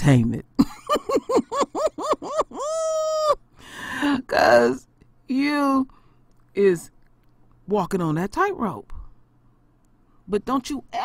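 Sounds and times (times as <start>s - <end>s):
woman laughing: 0.6s - 4.4s.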